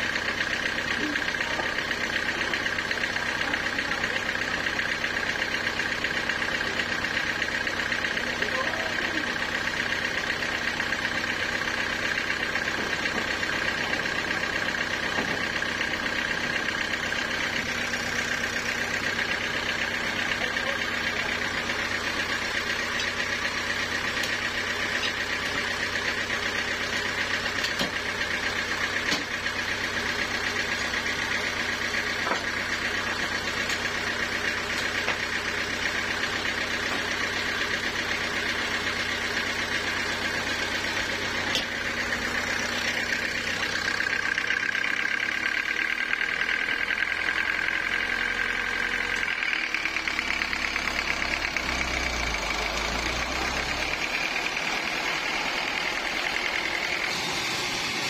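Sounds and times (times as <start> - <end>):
band sawmill whining drone: 51.6 - 58.0.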